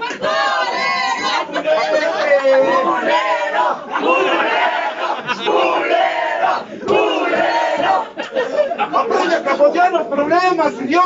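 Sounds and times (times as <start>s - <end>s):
crowd laughing and shouting: 0.0s - 11.0s.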